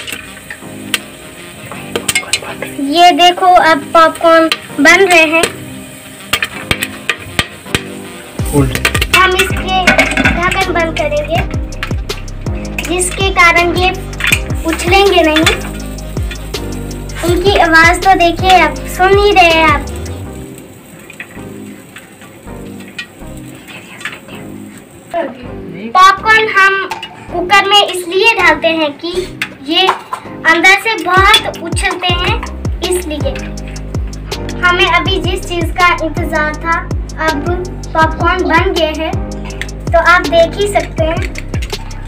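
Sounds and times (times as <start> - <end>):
popcorn kernels popping: 4.0 - 24.9, 38.5 - 42.0.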